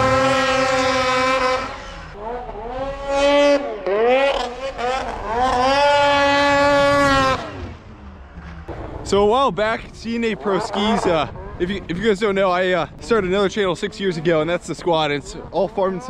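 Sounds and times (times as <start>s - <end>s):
snowmobile engine revving: 0.0s - 16.0s.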